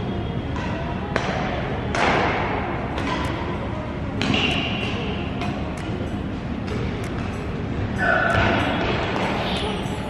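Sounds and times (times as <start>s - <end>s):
rackets hitting shuttlecock: 0.5s - 9.7s.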